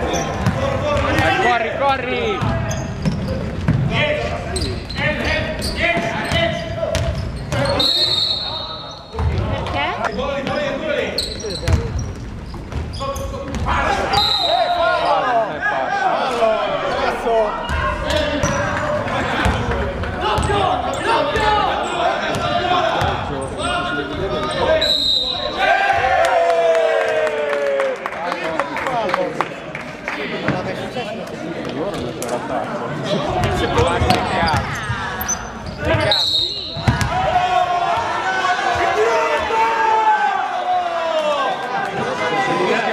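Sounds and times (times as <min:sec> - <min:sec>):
voices echoing in hall: 0:00.0 - 0:42.9
basketball bouncing on wooden floor: 0:02.4 - 0:03.9, 0:33.4 - 0:34.8, 0:36.8 - 0:37.1
shoe squeaks on court: 0:02.5 - 0:03.5, 0:04.5 - 0:09.4, 0:10.0 - 0:13.6, 0:33.1 - 0:37.1
referee whistle blast: 0:07.7 - 0:09.2, 0:14.1 - 0:14.8, 0:24.8 - 0:25.6, 0:36.0 - 0:37.0
basketball thumping: 0:36.8 - 0:37.2.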